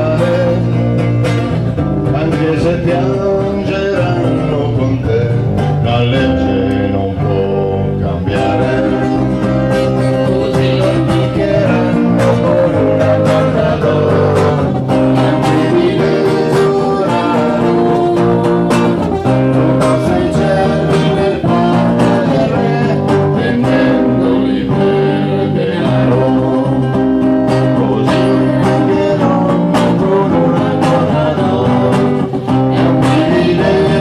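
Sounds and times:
live band with guitars: 0.0s - 34.0s.

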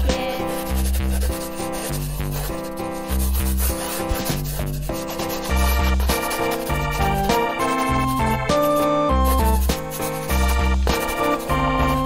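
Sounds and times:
background music with bass: 0.0s - 12.0s
marker rubbing on paper: 0.0s - 12.0s.

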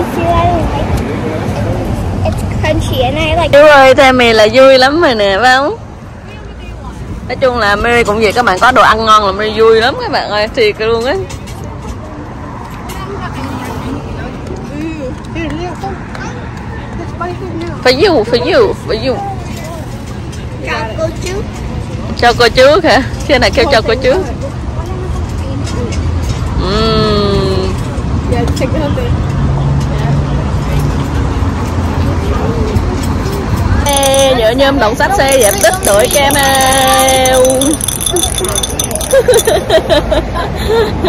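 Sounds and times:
faint voices talking: 0.0s - 39.5s
low rumble of traffic: 0.0s - 41.0s.

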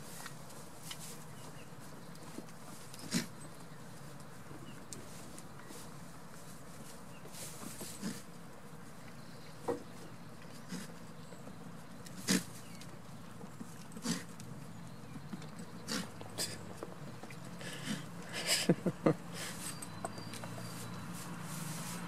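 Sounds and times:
person laughing: 18.2s - 19.6s.

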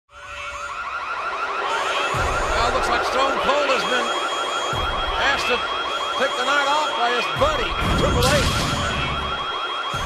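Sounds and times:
electronic warbling siren: 0.1s - 10.0s.

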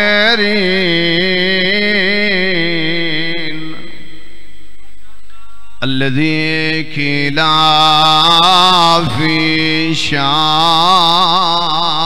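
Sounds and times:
man chanting in held notes: 0.0s - 12.0s.

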